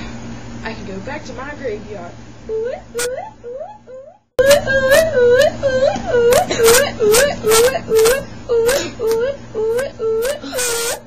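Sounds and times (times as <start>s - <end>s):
person moaning oh cries: 2.5s - 11.0s.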